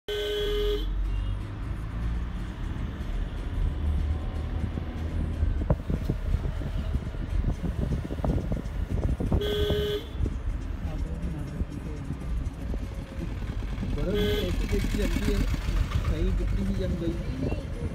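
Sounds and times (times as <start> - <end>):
vehicle horn honking: 0.1 - 1.4, 9.3 - 10.3, 14.0 - 14.9
vehicle driving rumble: 0.1 - 17.9
knocks and rattles on bumpy road: 1.4 - 17.9.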